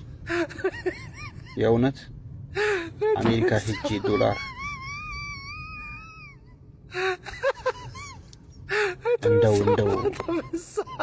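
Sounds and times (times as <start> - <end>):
man speaking: 3.2 - 4.4, 9.2 - 10.3.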